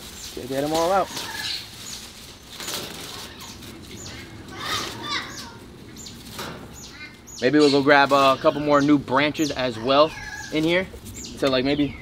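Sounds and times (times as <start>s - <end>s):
leaves and vines rustling: 0.0s - 12.0s.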